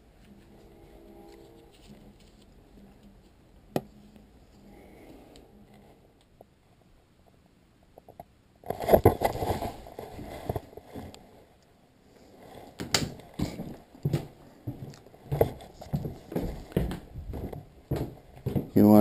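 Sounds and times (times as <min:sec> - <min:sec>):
footsteps on wooden floor: 0:12.8 - 0:19.0.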